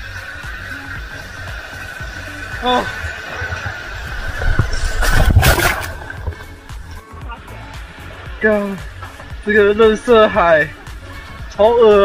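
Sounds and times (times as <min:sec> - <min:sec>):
stream water rushing and knocking: 0:00.0 - 0:07.2.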